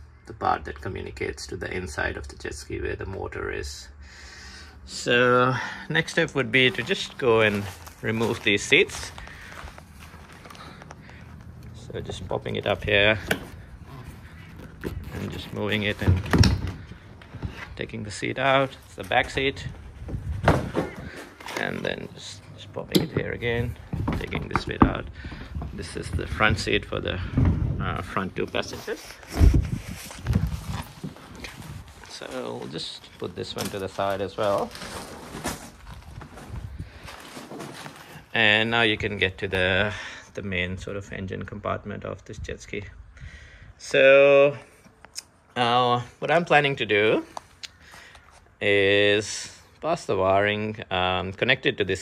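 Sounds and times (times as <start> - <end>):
faint handling noise: 6.1 - 38.6.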